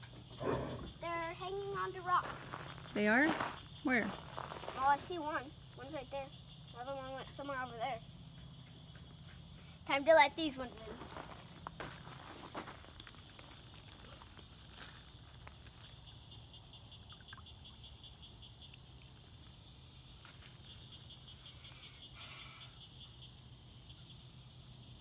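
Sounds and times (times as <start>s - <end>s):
insects chirping: 0.0s - 25.0s.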